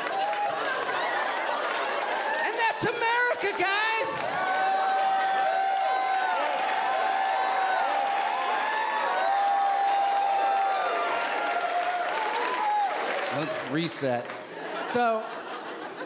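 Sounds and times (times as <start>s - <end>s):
audience whooping: 0.0s - 13.8s
audience clapping: 0.0s - 15.5s.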